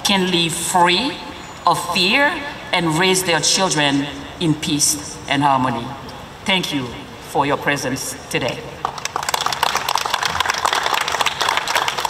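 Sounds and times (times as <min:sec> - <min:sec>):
audience applauding: 0:08.8 - 0:12.0.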